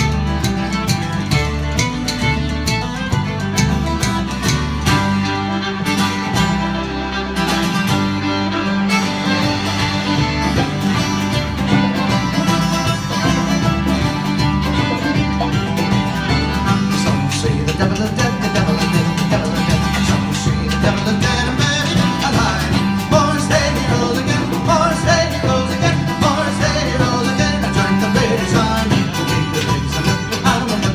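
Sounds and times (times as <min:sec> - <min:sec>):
electric bass: 0:00.0 - 0:30.9
fiddle lead: 0:00.0 - 0:30.9
strummed acoustic guitar: 0:00.0 - 0:30.9
congas: 0:08.8 - 0:30.9.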